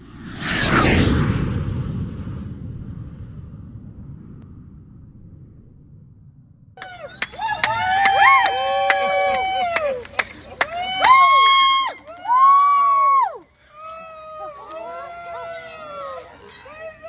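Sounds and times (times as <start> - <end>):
swoosh: 0.0 - 7.2
deep boom: 0.6 - 8.0.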